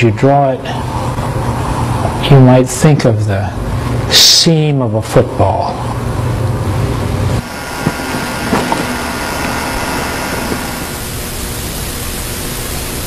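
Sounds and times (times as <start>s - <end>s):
faint hum: 0.0s - 13.0s
steady background hiss: 0.0s - 13.0s.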